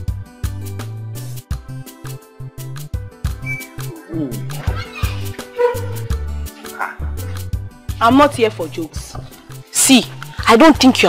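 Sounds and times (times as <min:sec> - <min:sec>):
background music with beat: 0:00.0 - 0:08.1.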